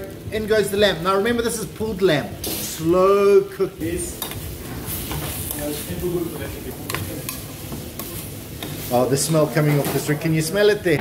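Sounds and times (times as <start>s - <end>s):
meat sizzling in a frying pan: 0.0s - 10.9s
metal spoon scraping a pan: 6.8s - 10.2s.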